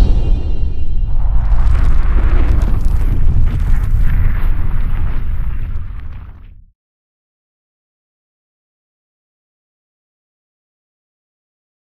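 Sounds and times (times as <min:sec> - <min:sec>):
deep explosion boom: 0:00.0 - 0:06.7.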